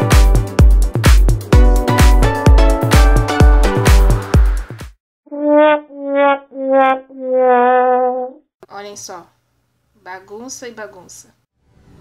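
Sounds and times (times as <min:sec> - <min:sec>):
sad trombone sound effect: 0:05.3 - 0:08.4.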